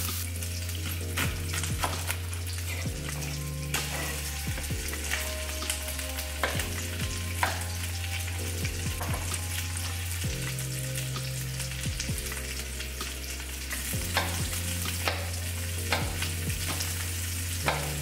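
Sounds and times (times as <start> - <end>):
chicken sizzling in a skillet: 0.0 - 18.0.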